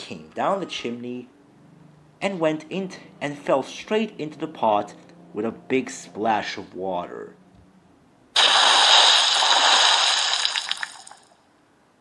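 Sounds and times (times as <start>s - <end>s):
big water splash: 8.4s - 11.2s.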